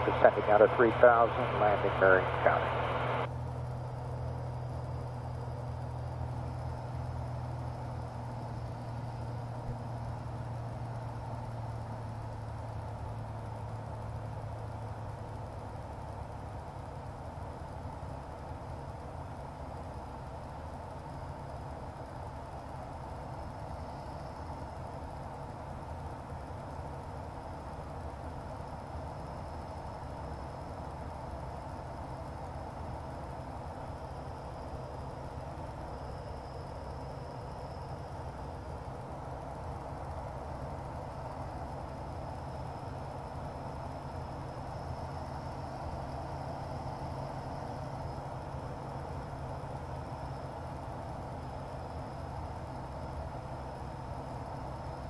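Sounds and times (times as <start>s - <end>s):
low hum: 0.0s - 16.0s
aircraft engine and propeller drone: 0.0s - 55.0s
faint high whine: 0.0s - 55.0s.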